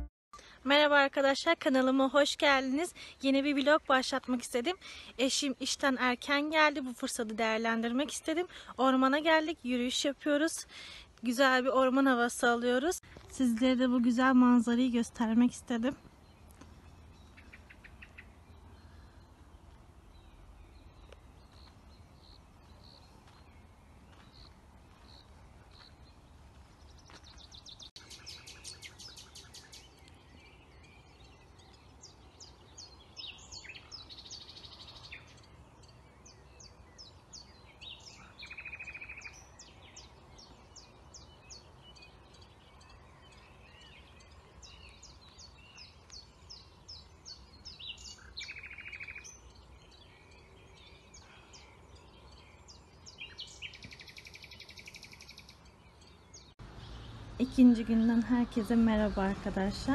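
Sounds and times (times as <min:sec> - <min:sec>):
songbirds chirping and trilling: 0:00.4 - 0:59.9.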